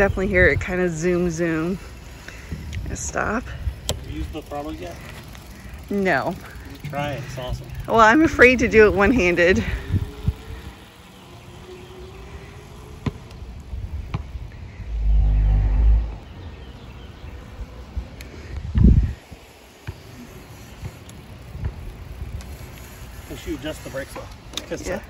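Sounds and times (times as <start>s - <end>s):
wind rumble on microphone: 9.6s - 10.9s, 13.5s - 19.3s.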